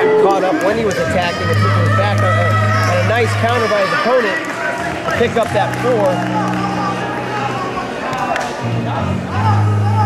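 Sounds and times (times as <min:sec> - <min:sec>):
background music: 0:00.0 - 0:10.0
scattered voices: 0:00.0 - 0:10.0.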